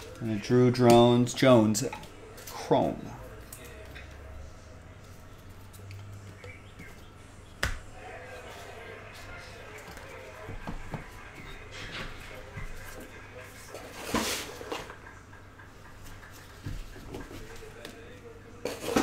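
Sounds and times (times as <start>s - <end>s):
faint television voices: 0.0s - 19.0s.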